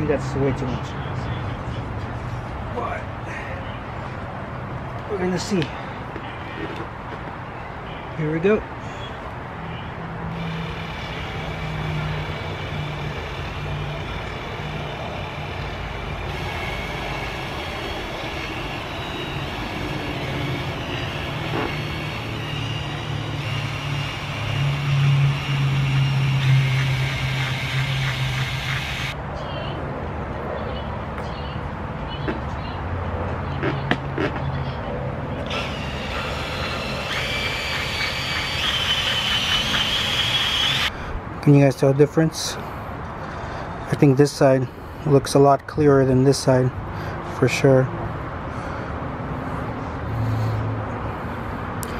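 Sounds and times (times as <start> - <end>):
cordless drill motor whine: 10.3 - 29.2, 35.4 - 40.9.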